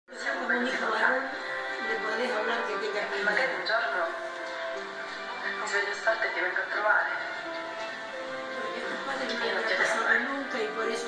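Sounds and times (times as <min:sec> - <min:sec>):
background music from television: 0:00.1 - 0:11.0.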